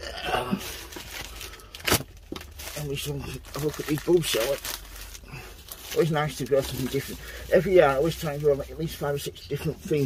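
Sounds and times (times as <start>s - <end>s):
packet rustling and crinkling: 0.6s - 10.0s.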